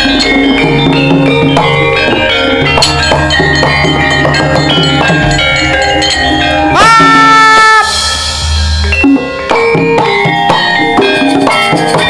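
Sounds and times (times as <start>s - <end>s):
gamelan playing: 0.0s - 12.0s.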